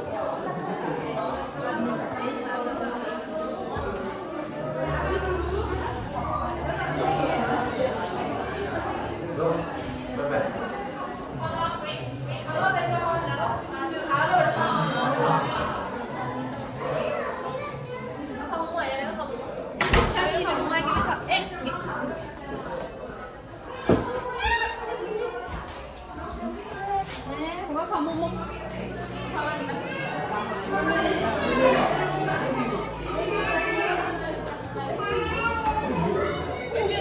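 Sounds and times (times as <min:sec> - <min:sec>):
adults chattering: 0:00.0 - 0:37.0
toddlers playing and babbling: 0:00.0 - 0:37.0.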